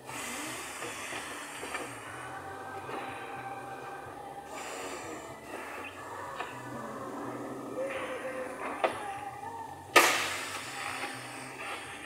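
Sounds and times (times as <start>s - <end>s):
compressed air hissing: 0.0s - 7.0s, 9.9s - 12.0s.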